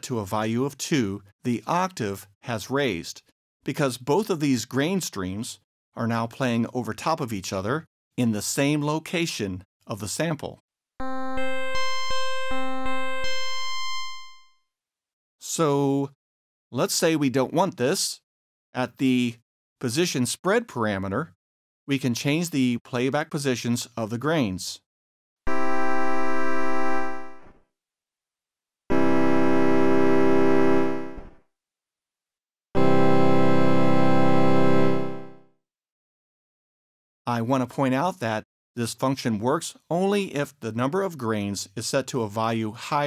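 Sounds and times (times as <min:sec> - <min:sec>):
buzzy synthesizer note: 0:11.0 - 0:13.4, 0:25.5 - 0:27.6, 0:28.9 - 0:31.3, 0:32.8 - 0:35.4.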